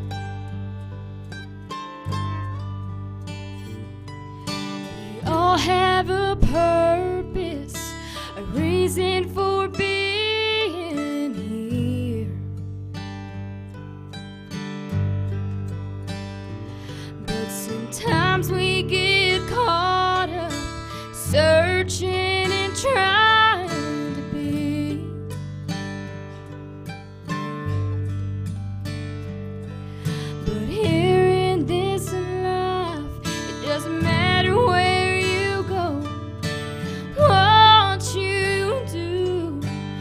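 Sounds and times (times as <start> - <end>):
strummed acoustic guitar: 0.0 - 40.0
woman singing gospel song: 17.3 - 20.6, 30.5 - 36.0, 37.1 - 39.6.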